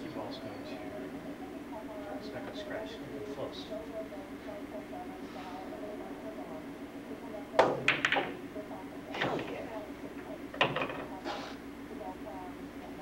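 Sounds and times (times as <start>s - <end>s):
billiard balls clacking: 7.6s - 8.4s, 9.2s - 9.8s, 10.5s - 11.1s
cue striking ball: 7.6s - 8.4s.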